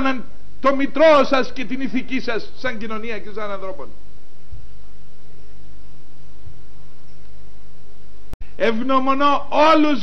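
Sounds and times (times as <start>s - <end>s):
background hiss: 0.0s - 10.0s
electrical mains hum: 0.0s - 10.0s.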